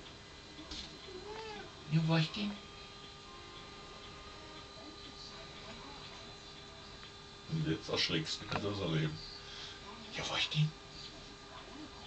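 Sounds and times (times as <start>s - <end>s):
cat meowing: 1.2s - 1.7s.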